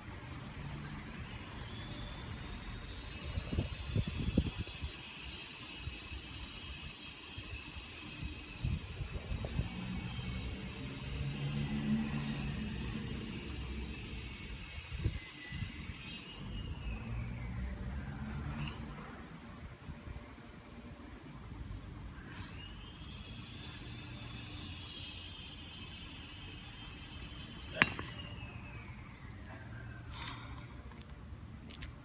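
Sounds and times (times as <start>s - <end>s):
distant traffic: 0.0s - 32.0s.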